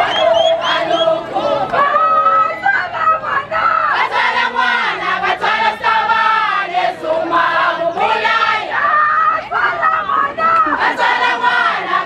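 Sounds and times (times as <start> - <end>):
crowd singing and chanting: 0.0 - 12.0.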